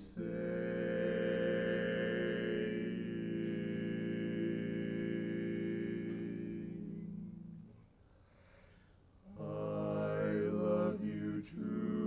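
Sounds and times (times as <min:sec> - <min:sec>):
men singing a cappella: 0:00.0 - 0:07.7, 0:09.3 - 0:12.0.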